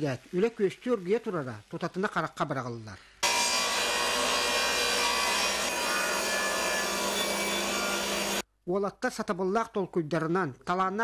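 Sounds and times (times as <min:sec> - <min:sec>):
circular saw cutting wood: 0:03.2 - 0:08.4.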